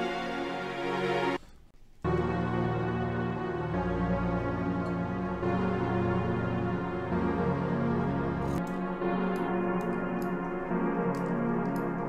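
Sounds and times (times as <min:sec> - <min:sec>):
dark synth string pad chords: 0:02.1 - 0:12.0.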